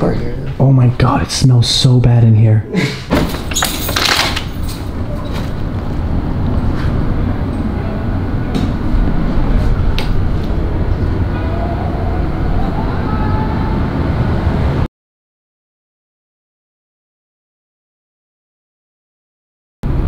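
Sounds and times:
loud low rumbling: 0:04.9 - 0:14.9.

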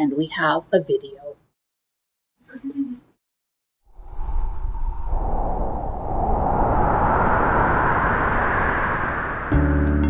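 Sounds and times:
rushing whoosh sound effect: 0:03.9 - 0:10.0.

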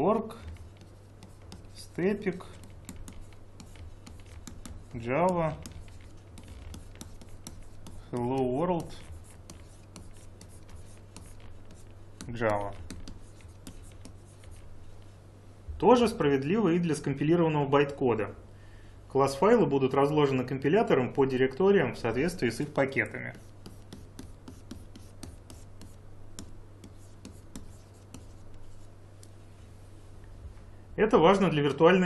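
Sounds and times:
stylus scratching on tablet: 0:00.0 - 0:15.0, 0:22.0 - 0:29.0
steady low hum: 0:00.0 - 0:32.0.

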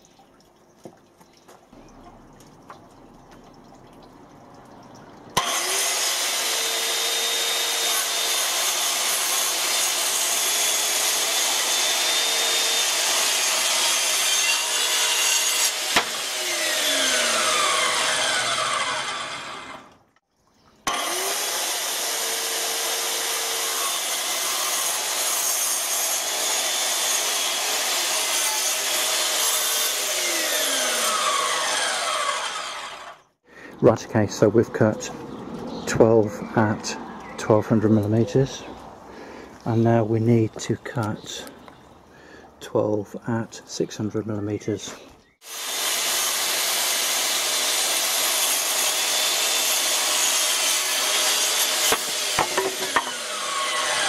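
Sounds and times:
circular saw cutting boards: 0:05.4 - 0:19.9, 0:20.9 - 0:33.3, 0:45.4 - 0:54.0.

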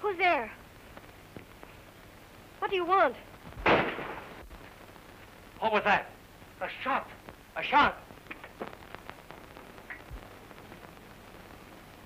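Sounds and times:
gunshot: 0:03.6 - 0:04.4.

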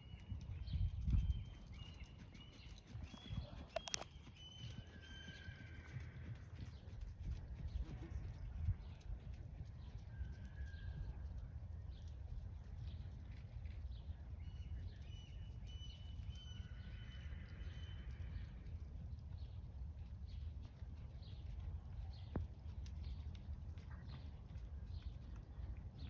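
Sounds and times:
hoofbeats on sand: 0:01.4 - 0:09.9.

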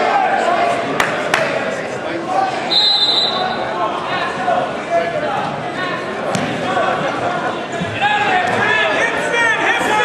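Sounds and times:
spectators and coaches shouting: 0:07.8 - 0:10.0.

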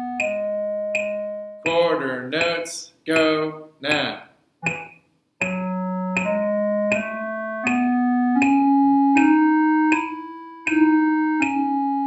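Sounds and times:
piano scale on keyboard: 0:00.0 - 0:12.0
metronome clicks: 0:00.1 - 0:12.0.

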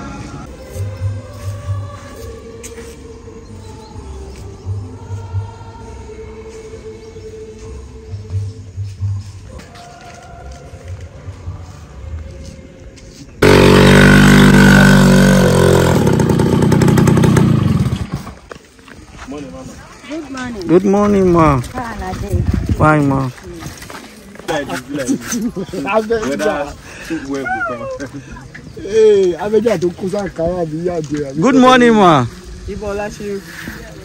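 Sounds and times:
faint music with held notes: 0:00.0 - 0:13.4
small motorcycle engine: 0:13.4 - 0:18.5.

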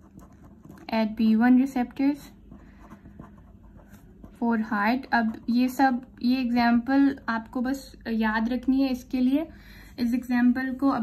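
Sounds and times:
felt-tip pen writing on paper: 0:00.0 - 0:01.4, 0:02.0 - 0:05.7.

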